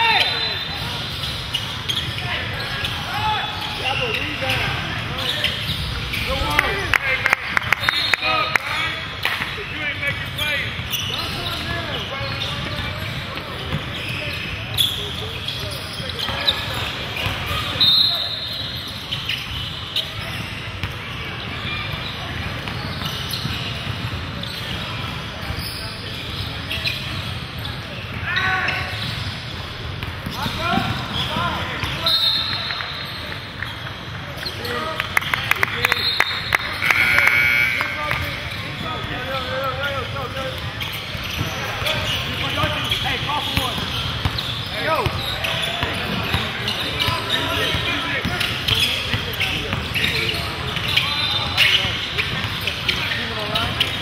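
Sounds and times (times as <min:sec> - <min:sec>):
sneakers squeaking on hardwood: 0:00.0 - 0:08.4, 0:09.2 - 0:54.0
voices of players and spectators: 0:00.0 - 0:54.0.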